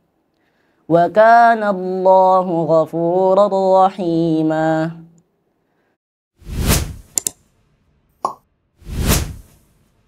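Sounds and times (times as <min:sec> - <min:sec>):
whoosh: 0:06.4 - 0:07.2, 0:08.8 - 0:09.8.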